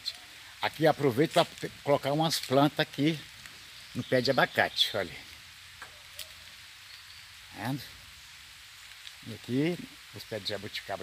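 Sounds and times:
faint outdoor hiss: 0.0 - 11.0
soft ticks: 8.8 - 9.2.

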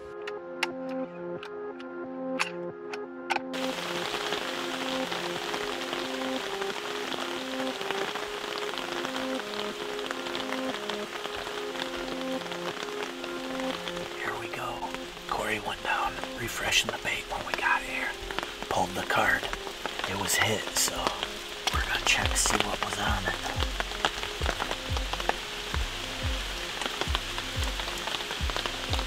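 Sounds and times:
slow background music: 0.0 - 29.0
rain on tent fabric: 3.5 - 29.0.

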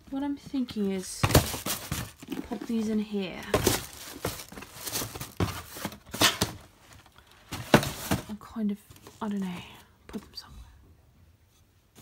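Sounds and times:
rustling: 0.1 - 9.9.

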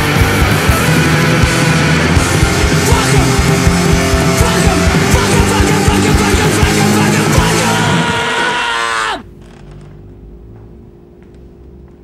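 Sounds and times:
distorted punk rock chord: 0.0 - 8.7
low hum: 9.2 - 12.0.

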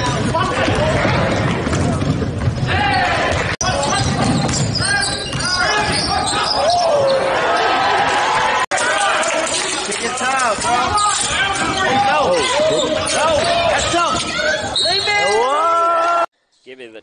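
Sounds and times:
basketball bouncing on hardwood: 0.0 - 2.7
players and spectators voices: 0.0 - 16.3.

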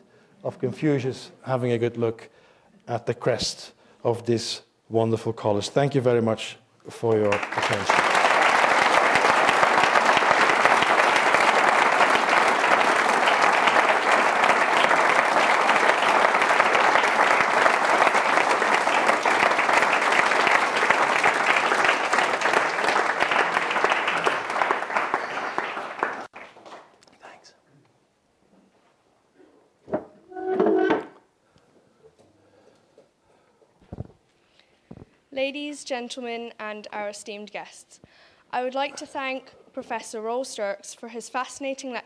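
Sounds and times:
audience applauding: 7.0 - 26.8.

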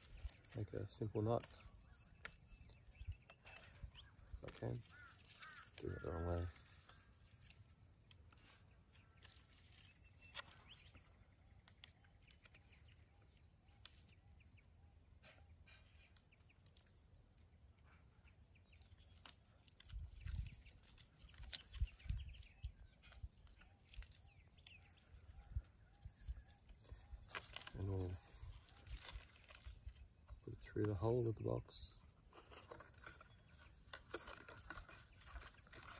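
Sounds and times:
leaves rustling: 0.0 - 14.4, 18.6 - 31.0, 32.2 - 35.9.

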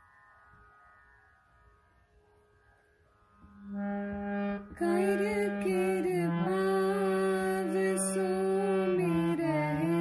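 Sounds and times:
harmonium low note: 3.4 - 10.0
harmonium faint held tone: 3.5 - 10.0.

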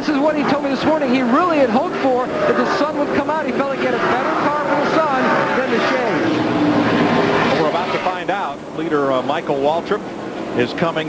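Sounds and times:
indistinct voices talking: 0.0 - 11.0
race car engines droning: 0.0 - 11.0.

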